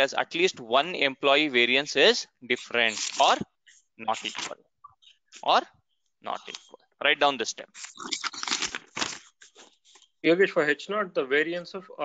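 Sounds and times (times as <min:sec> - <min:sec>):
rustling crackling noise: 0:02.6 - 0:03.5, 0:07.6 - 0:10.2.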